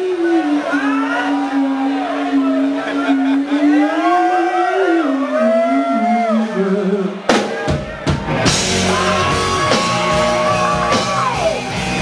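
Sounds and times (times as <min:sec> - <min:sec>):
guitar feedback overtones: 0:08.1 - 0:12.0.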